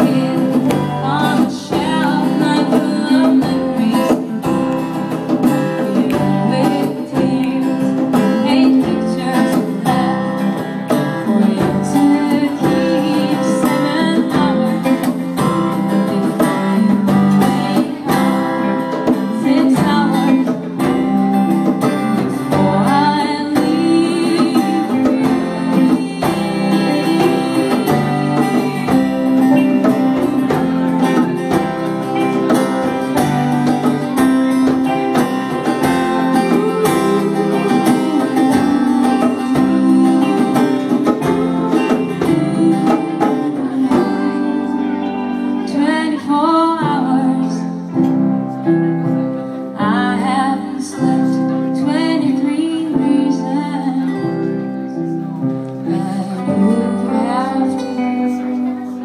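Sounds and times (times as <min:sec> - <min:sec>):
live band playing: 0:00.0 - 0:59.0
woman singing: 0:00.0 - 0:59.0.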